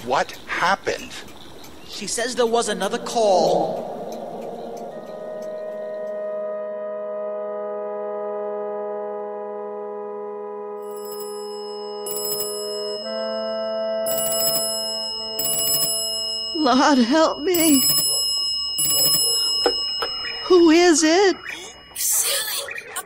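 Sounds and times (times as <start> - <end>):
sustained music chord: 2.8 - 11.0, 12.8 - 14.1
telephone bell ringing: 10.8 - 22.8.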